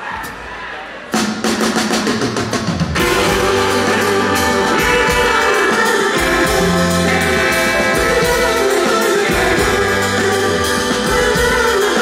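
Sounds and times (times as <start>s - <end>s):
drum kit rapid roll: 1.1s - 12.0s
rock band playing: 1.2s - 12.0s.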